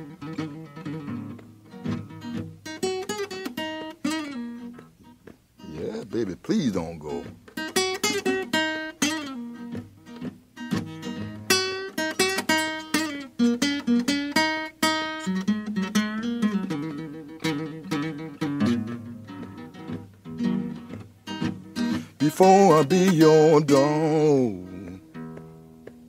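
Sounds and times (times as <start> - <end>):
solo acoustic guitar: 0.0 - 26.0.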